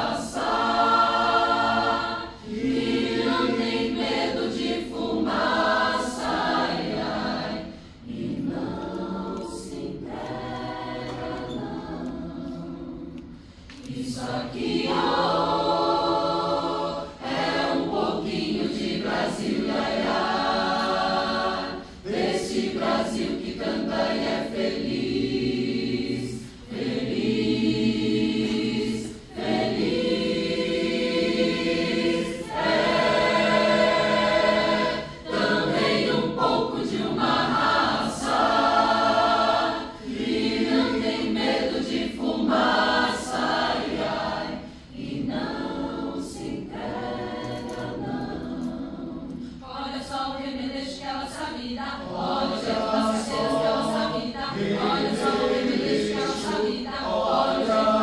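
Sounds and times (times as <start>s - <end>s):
mixed choir singing: 0.0s - 58.0s
singers breathing: 7.6s - 8.1s, 21.8s - 22.0s, 44.6s - 45.0s.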